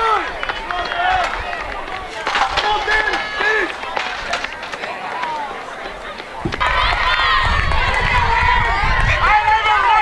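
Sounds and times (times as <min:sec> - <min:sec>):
crowd talking and calling out: 0:00.0 - 0:10.0.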